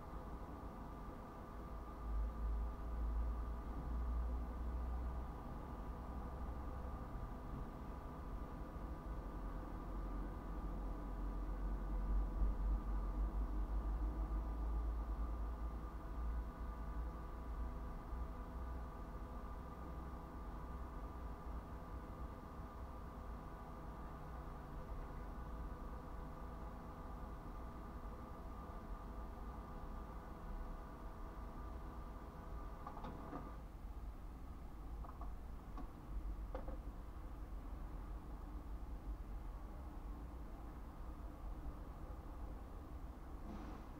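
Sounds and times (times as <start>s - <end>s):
faint steady hum: 0.0s - 43.9s.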